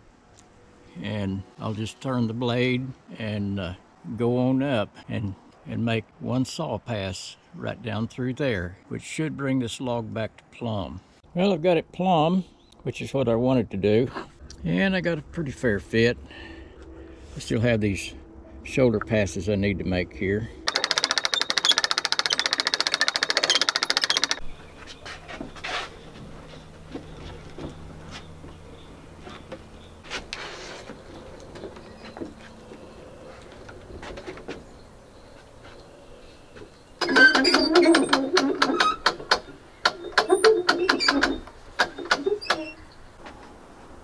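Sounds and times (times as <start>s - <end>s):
winch ratchet clicking: 20.7s - 24.4s.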